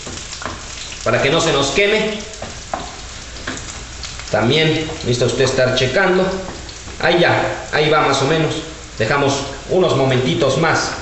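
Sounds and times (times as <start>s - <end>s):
stirring knocks in pan: 0.0s - 0.9s, 2.3s - 3.9s
potatoes sizzling in oil: 0.0s - 11.0s.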